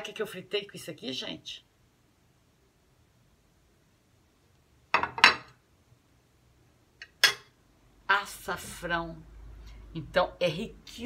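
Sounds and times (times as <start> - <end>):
ceramic plate clinking: 5.0 - 5.6, 7.0 - 7.5
plate tapping on countertop: 5.0 - 5.6.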